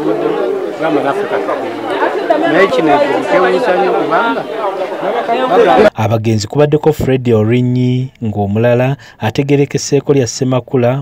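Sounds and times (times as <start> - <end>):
people chattering: 0.0 - 6.0
man talking: 0.0 - 11.0.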